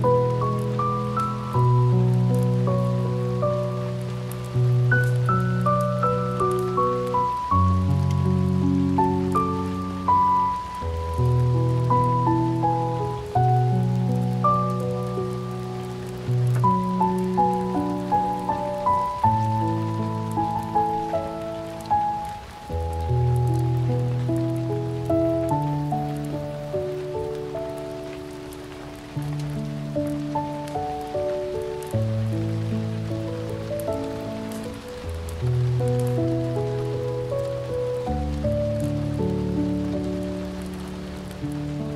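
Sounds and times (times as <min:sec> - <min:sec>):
rain pattering: 0:00.0 - 0:41.9
slow solo piano music: 0:00.0 - 0:41.9.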